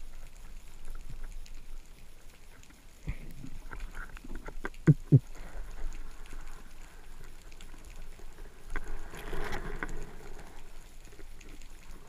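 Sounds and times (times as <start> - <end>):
low steady underwater hiss: 0.0 - 12.0.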